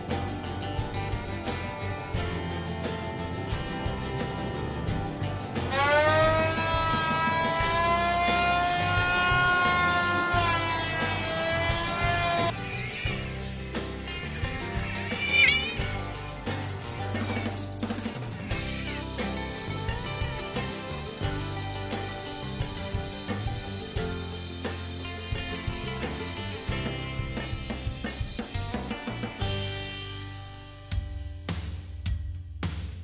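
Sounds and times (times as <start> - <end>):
background music: 0.0 - 31.6
power tool motor whine: 10.8 - 18.5.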